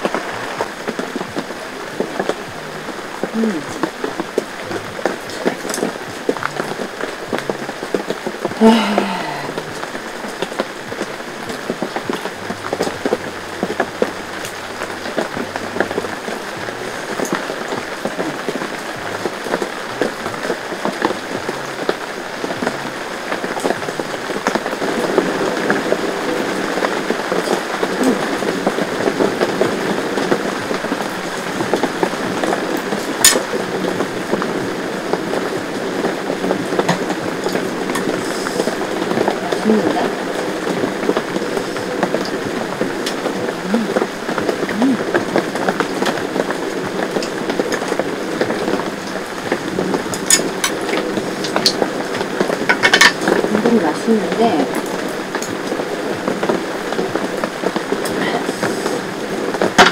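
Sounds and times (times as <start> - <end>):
heavy rain on tent fabric: 0.0 - 59.9.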